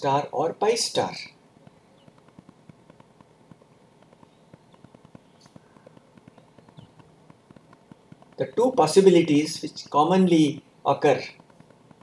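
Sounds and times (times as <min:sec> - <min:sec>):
soft irregular small clicks: 0:01.6 - 0:10.0, 0:11.3 - 0:12.0.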